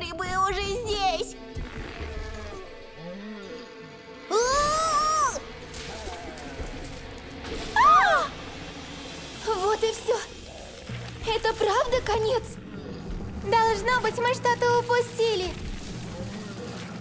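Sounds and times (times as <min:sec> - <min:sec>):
background music: 0:00.0 - 0:17.0.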